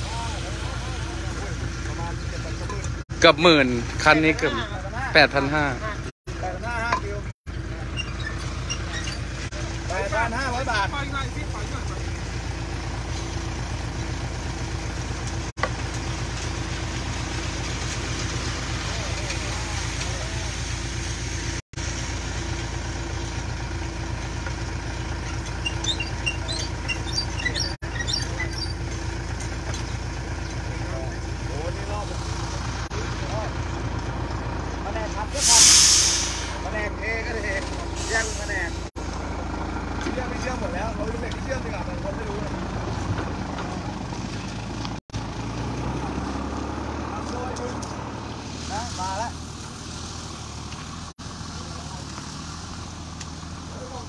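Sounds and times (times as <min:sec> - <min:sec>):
diesel truck engine running: 0:00.0 - 0:54.0
air hiss burst: 0:35.4 - 0:36.6.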